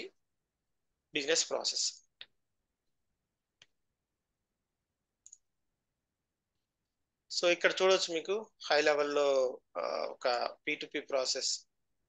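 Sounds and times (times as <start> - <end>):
computer mouse click: 5.2 - 5.5.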